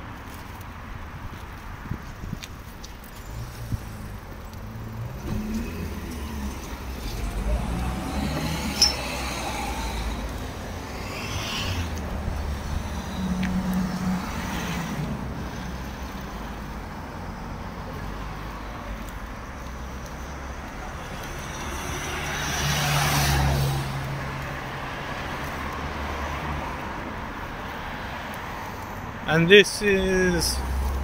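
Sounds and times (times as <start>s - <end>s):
cars passing: 0.0s - 31.0s.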